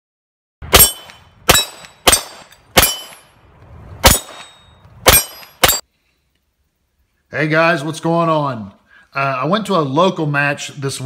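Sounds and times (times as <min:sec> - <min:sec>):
gunshots hitting steel targets: 0:00.6 - 0:03.4, 0:04.0 - 0:05.8.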